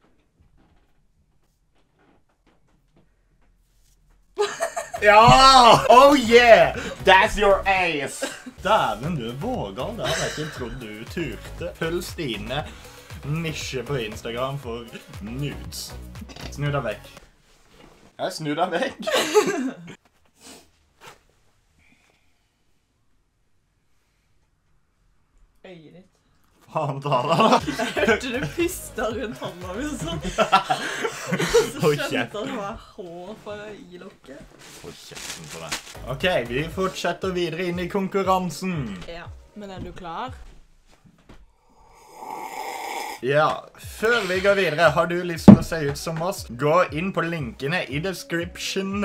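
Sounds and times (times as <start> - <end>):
woman laughing loudly: 4.4 - 5.8
person snorting: 41.6 - 43.2.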